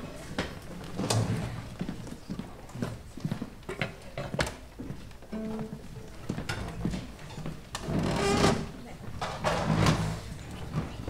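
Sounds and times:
chairs and music stands bumped: 7.8 - 11.0.

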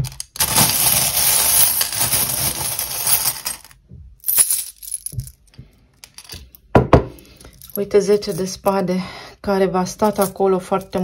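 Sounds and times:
metal charms jingling in glass bowl: 0.5 - 3.7, 7.5 - 8.7, 9.9 - 11.0.

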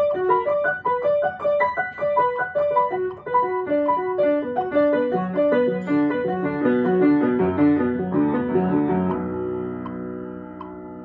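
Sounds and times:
piano playing scales: 0.0 - 11.0.

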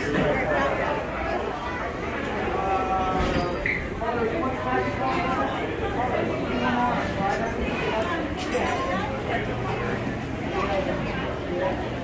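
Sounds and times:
crowd chatter indoors: 0.0 - 12.0.

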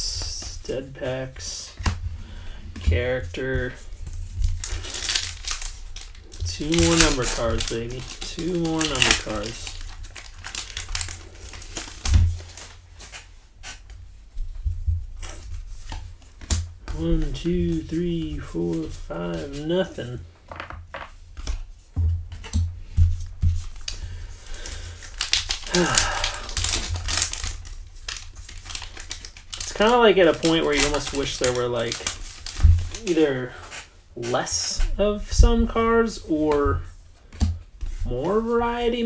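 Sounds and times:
plastic wrapper tearing and crinkling: 4.3 - 13.8, 23.5 - 33.2.

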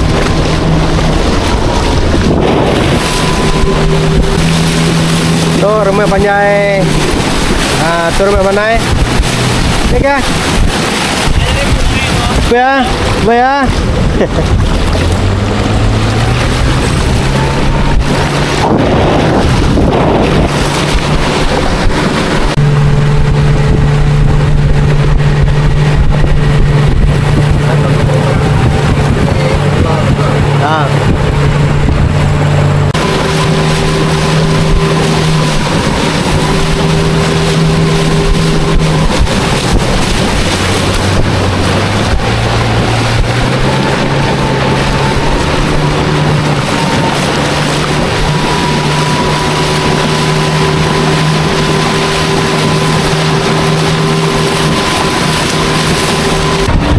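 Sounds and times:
outboard motor running: 0.0 - 56.9
water rushing: 0.0 - 56.9.

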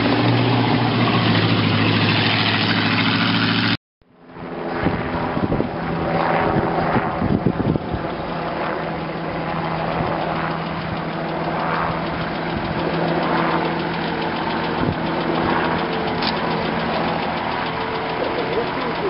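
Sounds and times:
vehicle engine crawling through mud: 0.0 - 3.8, 9.9 - 19.0.

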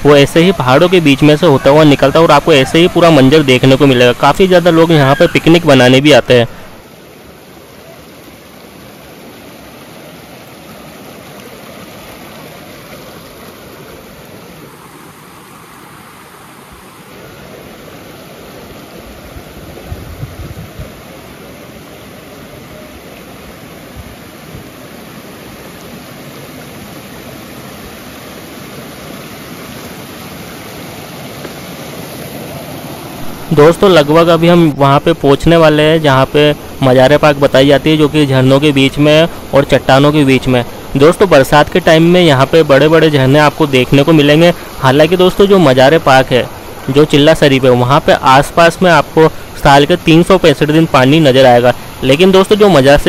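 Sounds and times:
stream rushing over rocks: 0.0 - 53.0.

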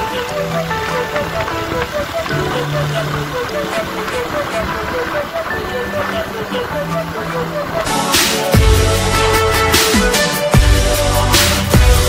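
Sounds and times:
steady noisy wash: 0.0 - 11.9
held bass notes: 6.8 - 12.0.

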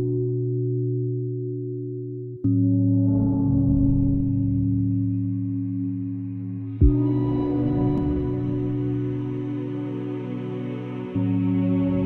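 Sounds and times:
held chord of steady tones: 2.8 - 12.0.

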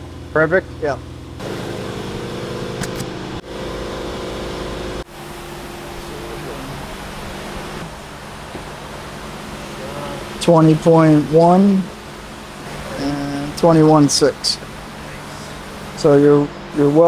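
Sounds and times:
mechanical hum with low drone: 0.0 - 17.0.

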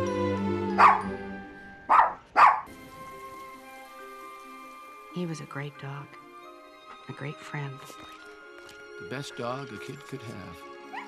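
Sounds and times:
film score music: 0.0 - 11.0
dog barking: 0.8 - 1.2, 1.9 - 2.7.

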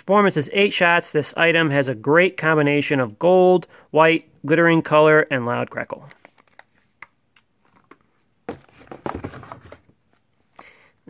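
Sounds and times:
cardboard scraping and rustling: 7.7 - 10.0.

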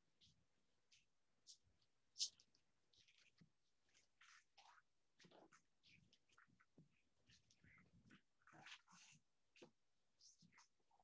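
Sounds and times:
soft rustles: 0.2 - 11.0.

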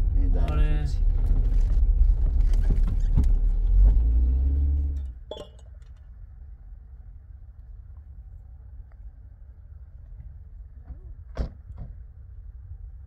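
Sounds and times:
road and engine rumble in car: 0.0 - 13.0.

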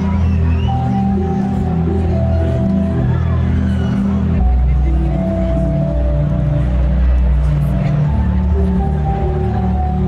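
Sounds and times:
deep bass line: 0.0 - 10.0.

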